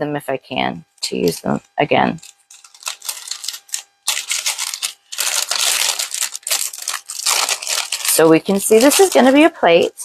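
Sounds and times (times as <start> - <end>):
wrapping paper crinkling: 1.0 - 9.9.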